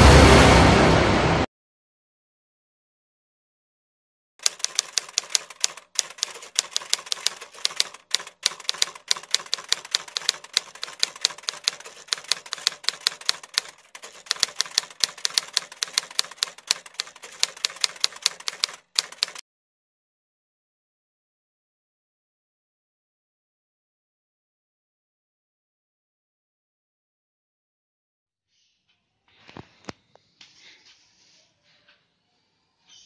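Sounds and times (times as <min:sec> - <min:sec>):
typewriter keystroke clacks: 0:04.4 - 0:19.4.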